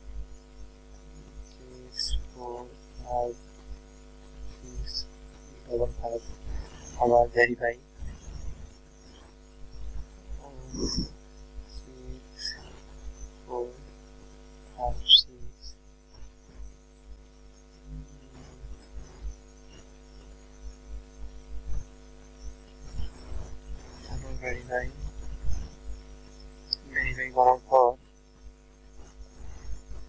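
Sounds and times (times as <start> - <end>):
electrical mains hum: 0.0 - 30.0.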